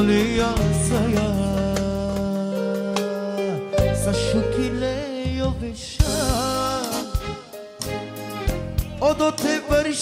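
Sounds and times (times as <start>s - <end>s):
man singing: 0.0s - 7.9s, 8.5s - 10.0s
band playing ballad: 0.0s - 10.0s.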